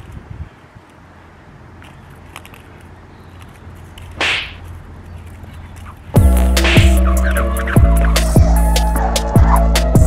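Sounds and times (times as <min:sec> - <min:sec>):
rope swishing through air: 0:04.0 - 0:04.8.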